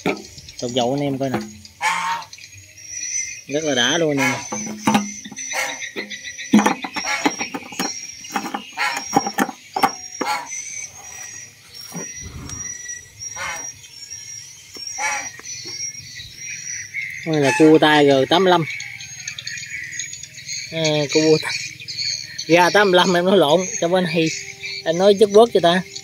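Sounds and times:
frogs croaking: 0.0s - 26.0s
high-pitched insect trill: 0.0s - 26.0s.

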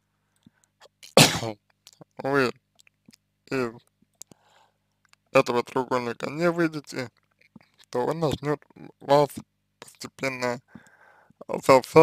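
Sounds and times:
man sneezing: 1.2s - 1.5s
man speaking: 1.4s - 2.6s, 3.5s - 3.8s, 5.3s - 7.1s, 7.9s - 10.7s, 11.4s - 12.0s.

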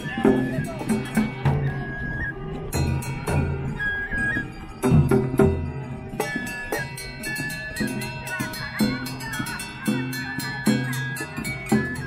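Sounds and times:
drum strikes: 4.8s - 12.0s.

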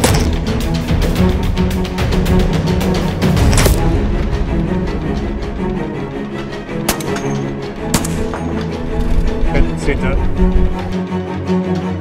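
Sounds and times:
rifle shot: 0.0s - 0.4s, 7.9s - 8.4s
background music: 0.0s - 12.0s.

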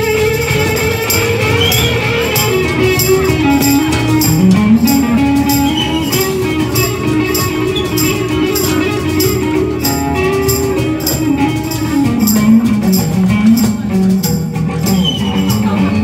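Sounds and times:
electric guitar lead line: 0.0s - 16.0s
percussion hits: 0.0s - 16.0s
strummed acoustic guitar: 0.0s - 16.0s.

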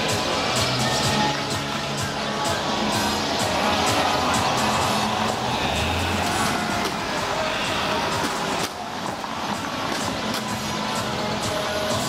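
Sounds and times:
crowd chatter: 0.0s - 12.0s
music from bars: 0.0s - 12.0s.

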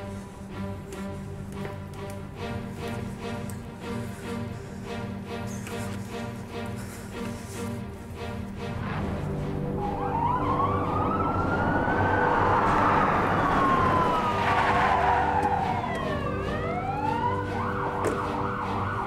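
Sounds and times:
background music: 0.0s - 19.0s
police siren wailing and yelping: 9.7s - 19.0s.

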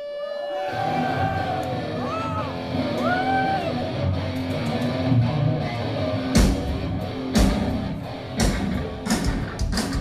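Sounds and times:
thrash metal band playing: 0.8s - 10.0s.

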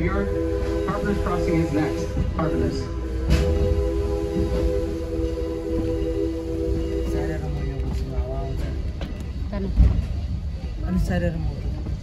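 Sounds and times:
steam locomotive whistle: 0.0s - 7.8s
low rumble of train running: 0.0s - 12.0s.

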